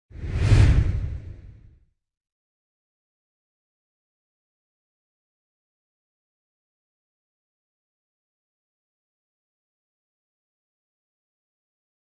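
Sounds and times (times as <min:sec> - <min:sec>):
deep whoosh: 0:00.1 - 0:01.8.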